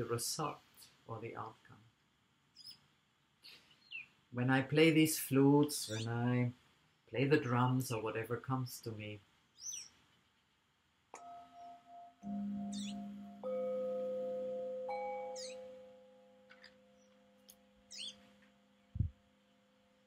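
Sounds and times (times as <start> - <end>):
birds chirping: 2.5 - 4.2, 5.6 - 6.4, 9.5 - 10.0, 11.2 - 19.1
singing bowls ringing: 11.2 - 18.9.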